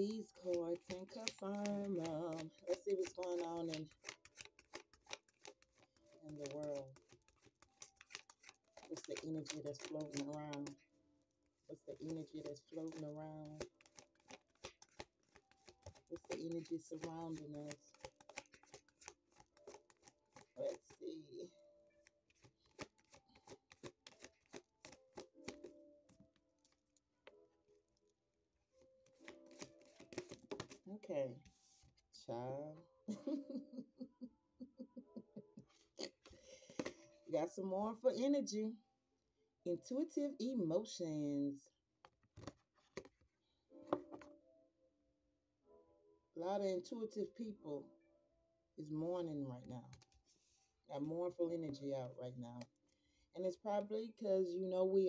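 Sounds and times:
cards being shuffled: 0.0s - 10.8s, 11.8s - 21.2s, 22.0s - 26.8s, 29.0s - 31.8s, 36.1s - 37.0s.

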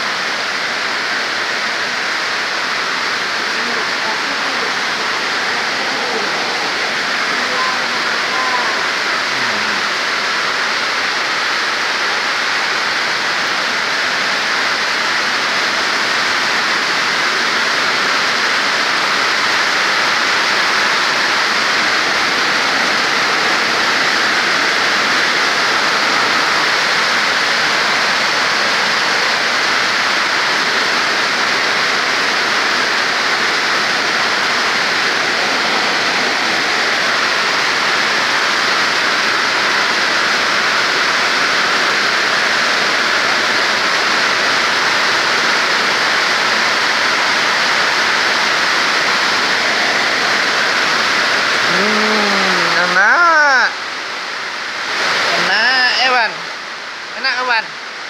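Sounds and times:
steady rain hiss: 0.0s - 58.0s.

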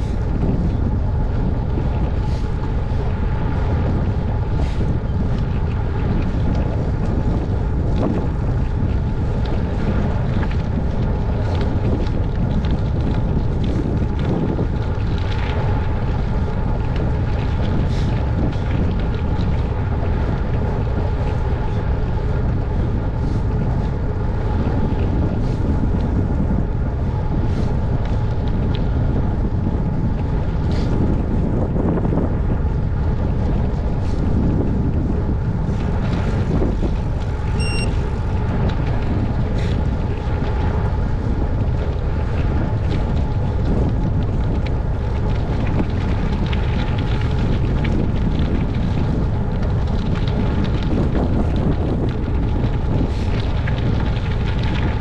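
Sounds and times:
wind buffeting microphone: 0.0s - 55.0s.

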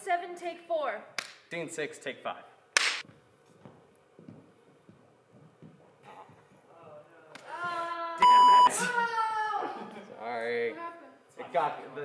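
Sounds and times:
soft thuds and shuffles on stage: 3.1s - 6.7s.

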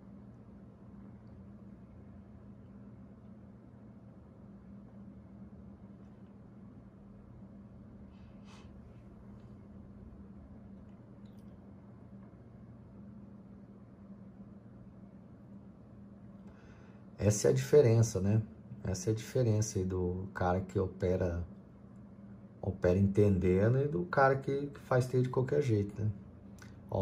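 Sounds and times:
steady low hum: 0.0s - 27.0s.

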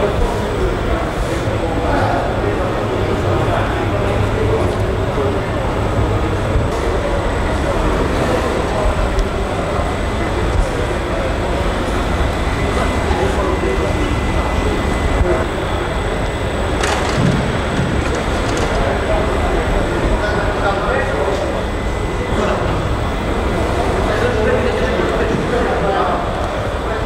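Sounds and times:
indistinct voices talking: 0.0s - 27.0s
steady mechanical drone: 0.0s - 27.0s.

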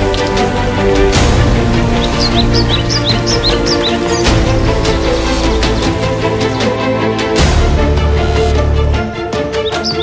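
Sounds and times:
background music: 0.0s - 10.0s
bird chirping: 1.7s - 6.6s, 9.4s - 10.0s.

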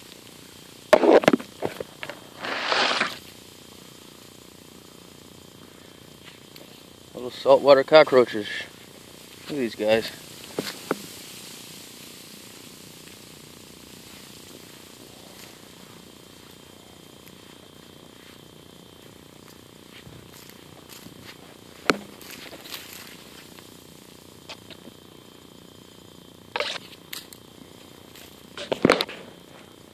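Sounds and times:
dry grass rustling: 8.1s - 25.2s, 26.5s - 29.8s
sharp clicks and crackles: 26.5s - 27.5s.

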